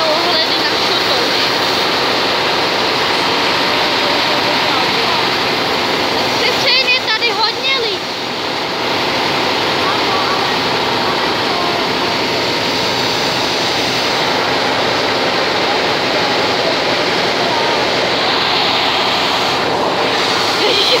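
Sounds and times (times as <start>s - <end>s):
steam locomotive venting steam: 0.0s - 21.0s.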